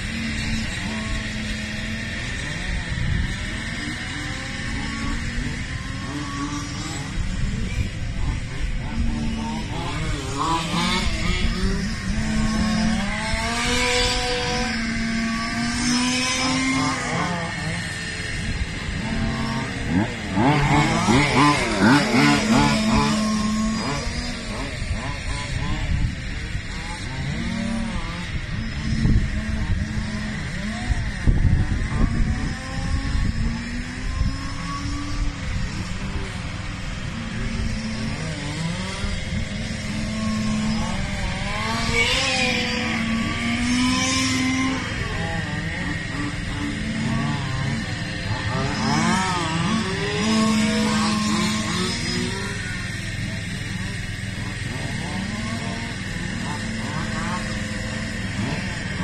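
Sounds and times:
model car engines revving: 0.0 - 59.0.

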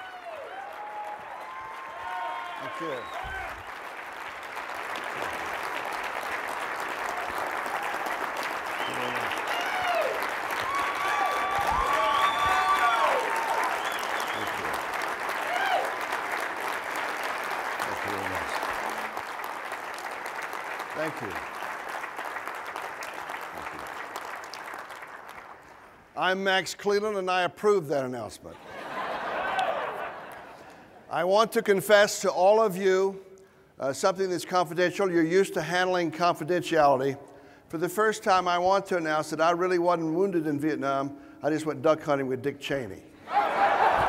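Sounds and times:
people cheering: 0.0 - 4.1, 5.2 - 20.3, 28.8 - 30.4, 43.2 - 44.0
audience applauding: 0.0 - 26.1, 43.3 - 44.0.

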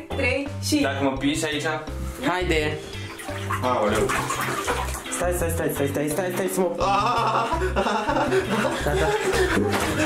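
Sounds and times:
water sloshing in a bathtub: 2.7 - 6.4, 8.4 - 10.0.

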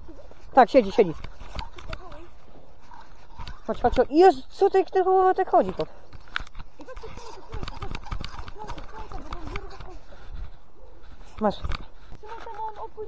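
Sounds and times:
indistinct talking: 0.0 - 13.0.

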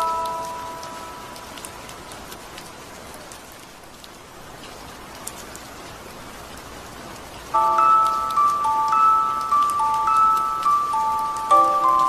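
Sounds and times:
steady rain: 0.0 - 12.0
music box notes: 7.6 - 12.0.

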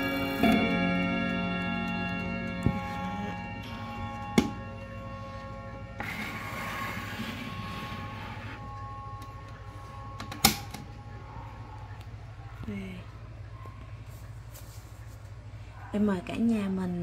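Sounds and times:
clock gong rods ringing: 0.0 - 12.1
rustling noise: 14.0 - 15.5.

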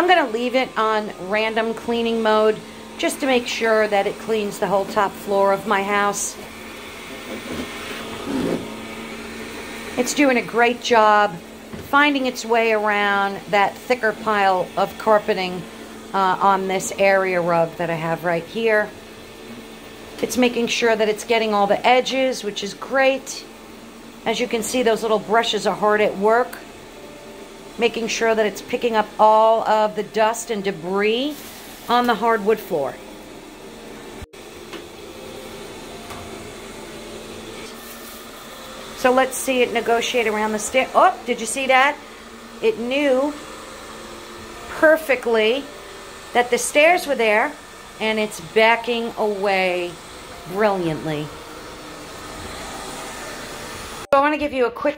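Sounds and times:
robot vacuum humming: 0.0 - 54.1.

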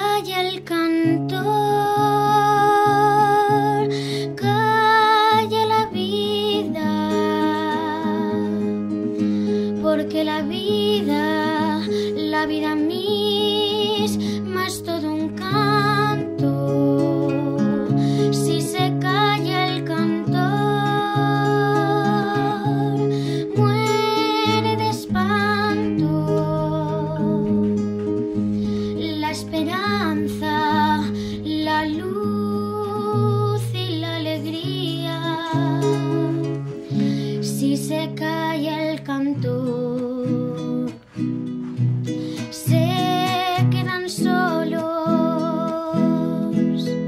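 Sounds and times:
classical guitar playing: 0.0 - 47.0.

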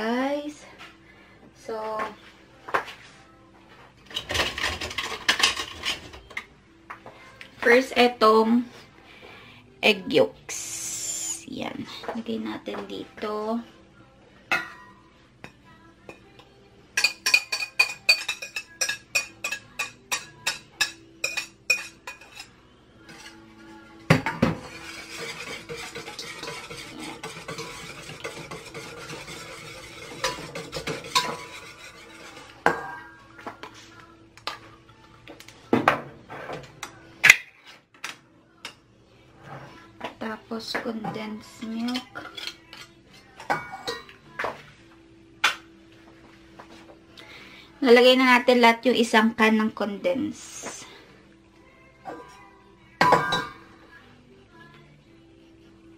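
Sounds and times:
whisk tapping metal bowl: 17.0 - 22.5, 24.2 - 32.9
rapid whisking: 24.6 - 32.6.

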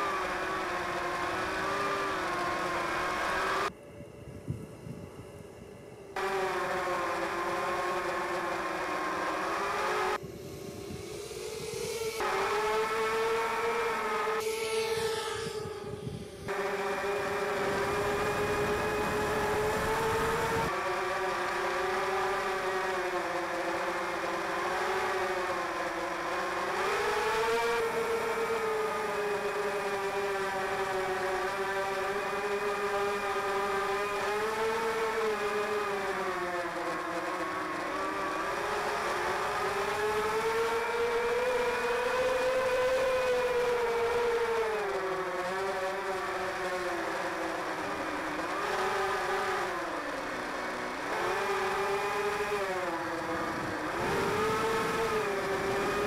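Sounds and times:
drone motors whining: 0.0 - 56.0.

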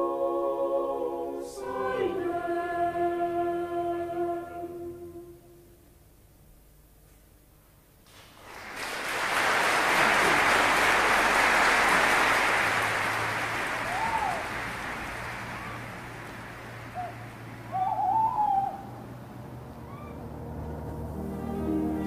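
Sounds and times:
broad rushing noise: 9.0 - 22.0
owl calling: 16.9 - 19.0, 19.8 - 20.2.

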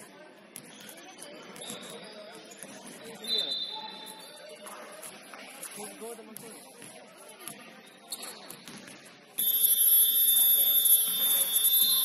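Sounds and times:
scoreboard buzzer: 9.4 - 12.0.

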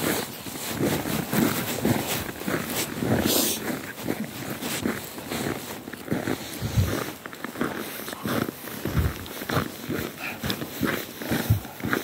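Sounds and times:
footsteps crunching on snow: 0.0 - 12.0.

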